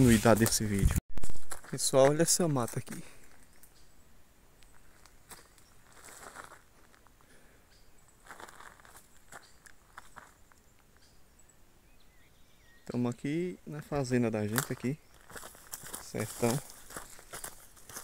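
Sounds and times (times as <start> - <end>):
faint footsteps: 0.0 - 3.6, 4.6 - 7.3, 8.1 - 10.6, 14.4 - 18.0
rustling of brush and dry leaves: 0.0 - 3.9, 4.5 - 7.2, 8.0 - 11.2, 13.7 - 18.0
twigs crackling: 4.6 - 7.1, 8.2 - 11.1, 13.9 - 18.0.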